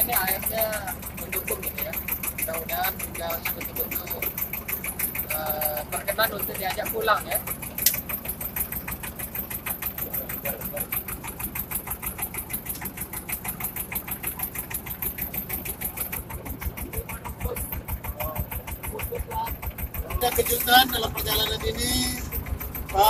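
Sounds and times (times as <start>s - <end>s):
boat engine chugging: 0.0s - 23.0s.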